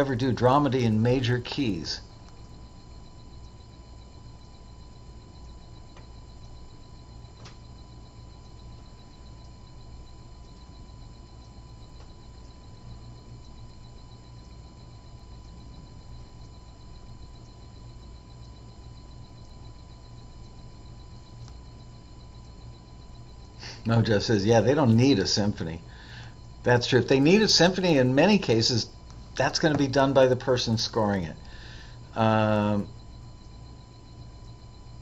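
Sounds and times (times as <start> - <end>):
faint high-pitched whine: 0.0 - 35.0
low electrical hum: 0.0 - 35.0
faint ticks: 2.2 - 23.9, 32.8 - 35.0.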